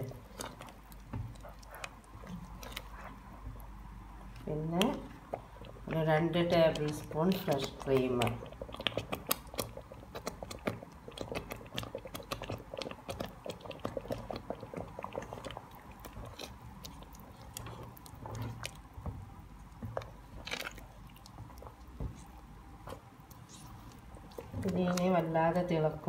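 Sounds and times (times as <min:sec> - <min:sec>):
spatula stirring thick gravy: 0:00.0 - 0:25.8
gravy crackling and popping: 0:00.0 - 0:26.0.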